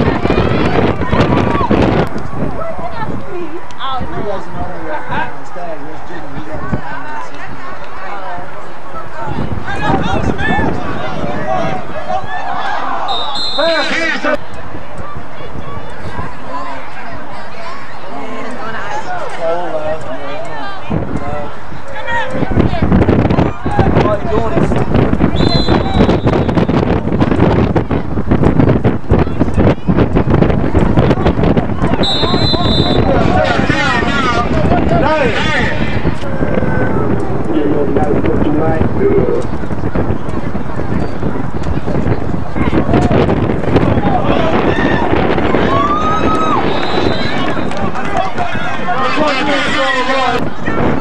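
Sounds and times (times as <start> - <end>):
wind buffeting microphone: 0.0 - 51.0
spectators shouting: 6.6 - 28.2, 29.1 - 37.5, 42.3 - 51.0
high whistle blowing: 13.0 - 14.0, 25.4 - 26.8, 32.0 - 33.2, 46.5 - 47.6
long held shout: 44.1 - 47.4.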